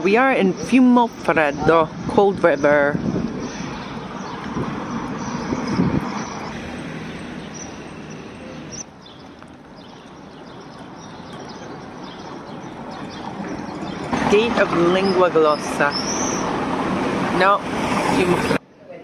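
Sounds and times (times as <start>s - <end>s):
steady outdoor rushing noise: 0.0s - 18.8s.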